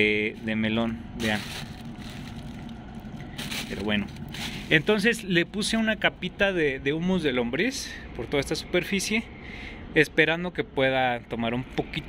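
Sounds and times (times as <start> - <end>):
steady background noise: 0.0 - 12.0
fingers rustling through soil: 1.2 - 5.2.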